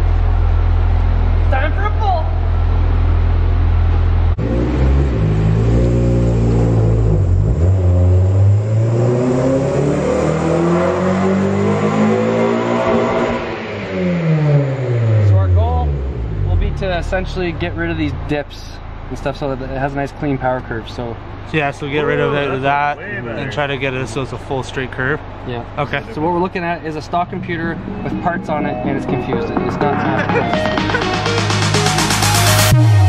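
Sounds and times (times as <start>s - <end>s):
car engine revving on dyno: 2.4s - 19.9s.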